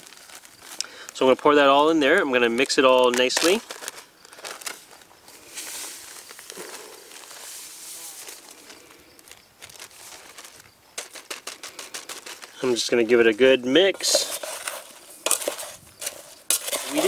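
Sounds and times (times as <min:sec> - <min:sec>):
plastic bag crinkling: 0:00.0 - 0:17.0
sugar mix hissing into pot: 0:13.9 - 0:17.0.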